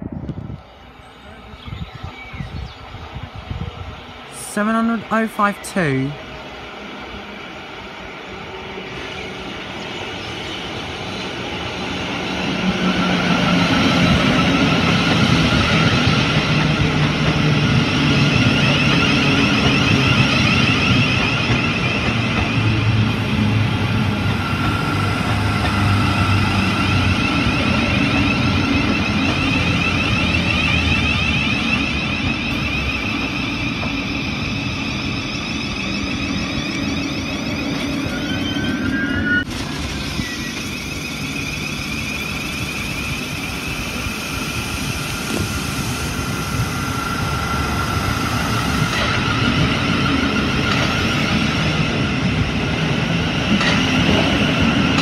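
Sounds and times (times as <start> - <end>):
wheels rumbling on rails: 6.9 - 55.0
train motor whine: 18.3 - 55.0.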